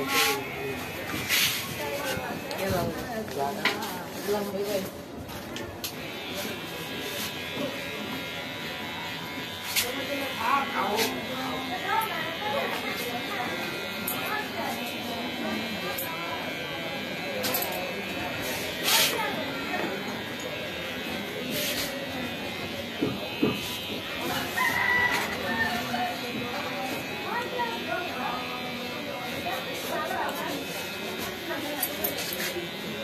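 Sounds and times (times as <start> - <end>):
steady electric buzz: 5.8 - 33.0
scissors snipping hair: 9.4 - 13.2, 17.1 - 24.4, 28.7 - 32.8
rooster crowing: 24.6 - 25.8.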